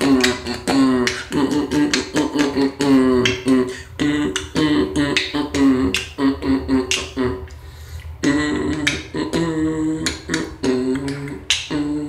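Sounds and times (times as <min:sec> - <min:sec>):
hummed bass notes: 0:00.0 - 0:07.5, 0:08.2 - 0:12.0
percussive mouth clicks: 0:00.0 - 0:12.0.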